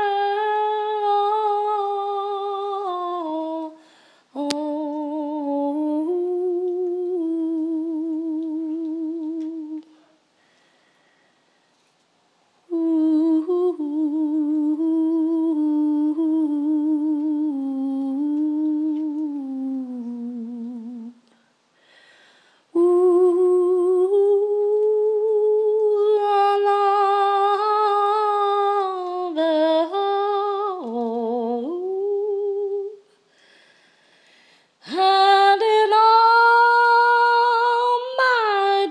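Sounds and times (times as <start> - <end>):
woman humming: 4.4 - 10.1, 12.7 - 21.3.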